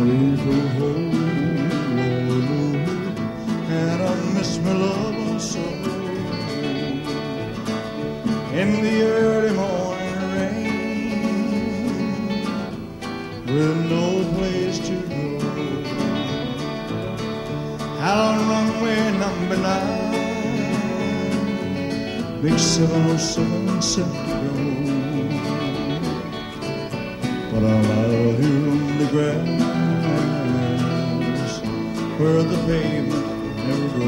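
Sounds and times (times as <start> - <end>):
guitar: 0.0 - 34.0
live country band playing: 0.0 - 34.0.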